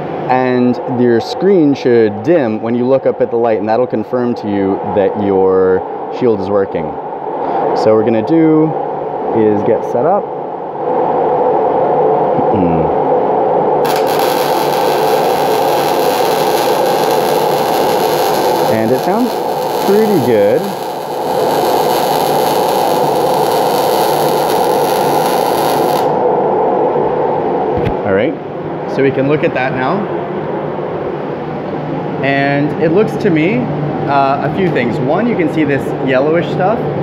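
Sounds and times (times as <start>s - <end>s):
welding arc hissing and crackling: 13.8s - 26.2s
fume extractor running: 13.8s - 26.3s.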